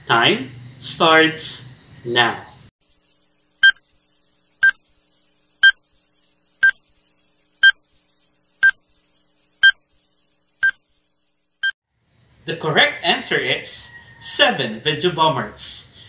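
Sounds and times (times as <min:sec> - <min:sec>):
timer beeping: 0:03.6 - 0:03.8, 0:09.6 - 0:09.8.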